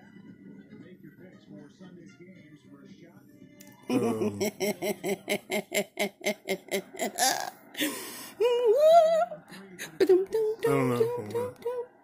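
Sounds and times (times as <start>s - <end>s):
woman laughing: 3.9s - 11.8s.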